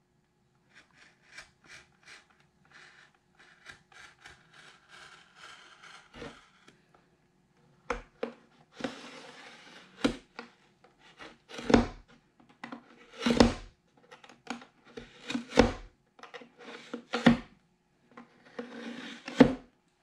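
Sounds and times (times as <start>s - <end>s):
hobby knife scraping cuts: 0.8s - 6.7s, 11.1s - 12.0s, 13.0s - 13.6s, 18.5s - 19.5s.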